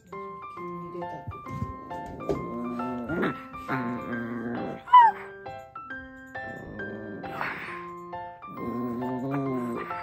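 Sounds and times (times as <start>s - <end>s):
background music: 0.0s - 10.0s
small dogs growling and tussling: 1.5s - 4.9s, 6.5s - 7.9s, 8.5s - 10.0s
dog yipping: 4.9s - 5.3s.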